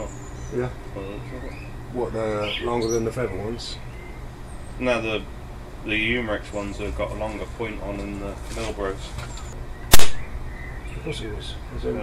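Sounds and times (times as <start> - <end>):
airgun shot: 9.9 - 10.3.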